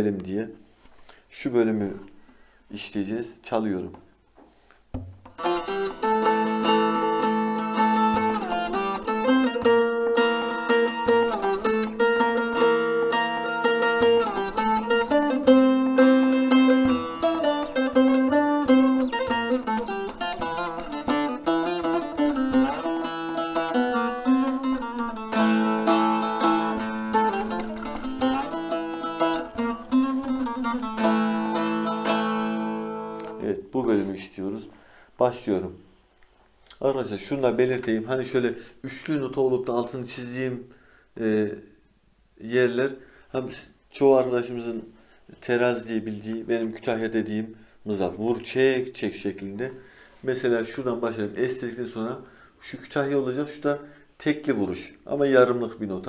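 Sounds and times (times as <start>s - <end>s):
plucked long-necked lute melody: 5.0s - 33.5s.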